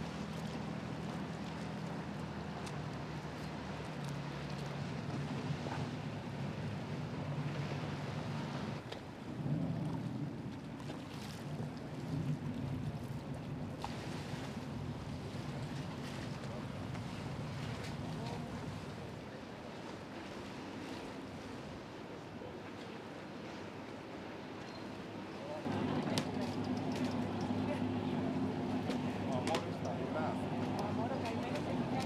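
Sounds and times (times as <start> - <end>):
boat engine humming: 0.0 - 32.0.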